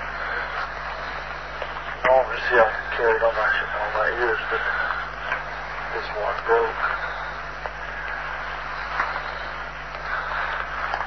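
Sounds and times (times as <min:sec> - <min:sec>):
low constant hum: 0:00.0 - 0:11.0
steady hiss: 0:00.0 - 0:11.0.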